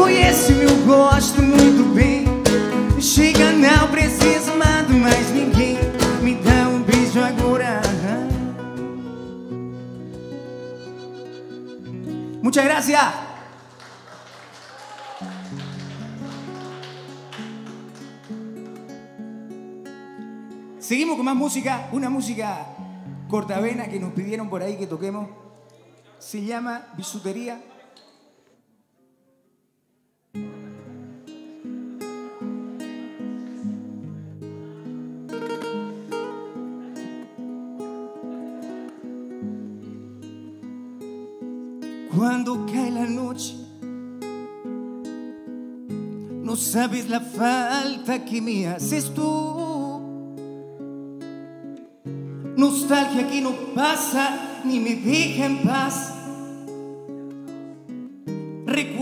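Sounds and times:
loud sung note: 0.0s - 2.0s
soft acoustic guitar notes: 0.0s - 13.7s, 15.4s - 26.3s, 30.3s - 59.0s.

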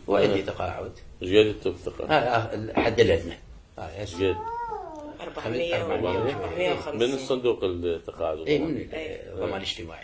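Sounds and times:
person speaking: 4.1s - 7.4s
cat meow: 4.2s - 5.3s.

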